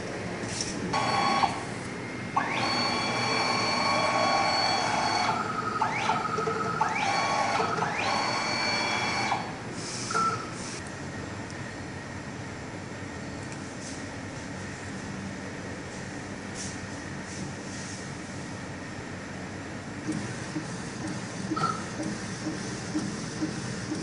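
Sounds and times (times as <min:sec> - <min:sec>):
printer tray motor whining: 0:00.9 - 0:09.7.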